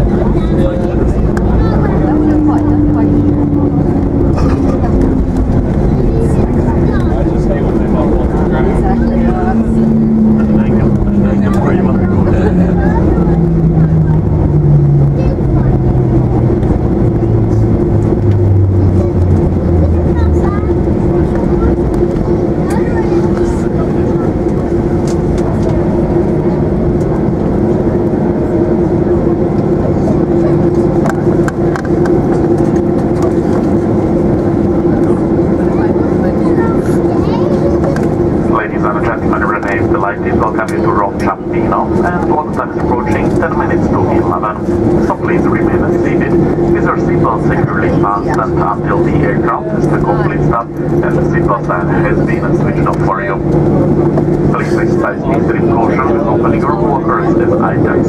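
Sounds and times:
airplane cabin hum and rumble: 0.0 - 58.0
jet engines spooling down: 0.0 - 58.0.

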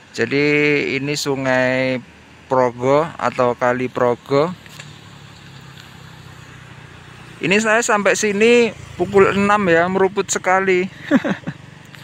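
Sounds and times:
faint outdoor noise: 0.0 - 12.0
vehicle engine humming: 0.0 - 12.0.

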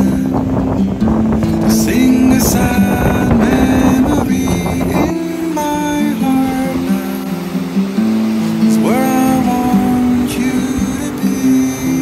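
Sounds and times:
song with guitar: 0.0 - 12.0.

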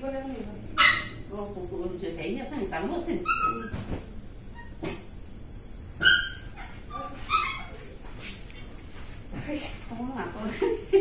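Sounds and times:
dog whining and yelping: 3.2 - 4.8, 6.0 - 8.0.

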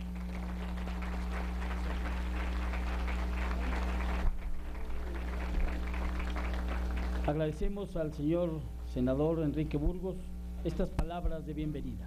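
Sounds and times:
audience applauding: 0.0 - 7.7
low electrical hum: 0.0 - 12.0.

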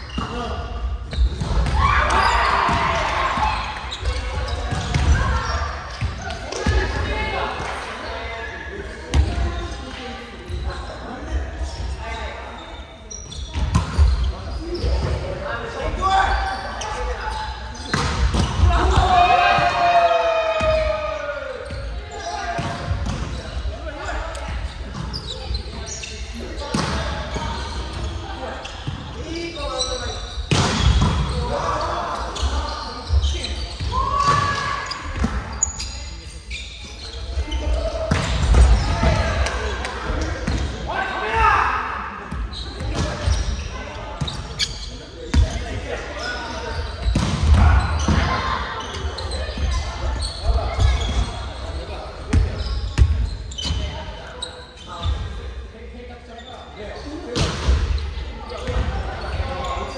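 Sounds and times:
players shouting: 18.6 - 22.2.

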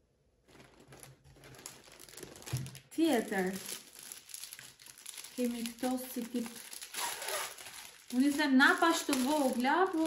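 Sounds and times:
plastic packaging crinkling: 0.4 - 10.0
woman speaking: 2.9 - 3.8, 5.4 - 6.7, 8.1 - 10.0.

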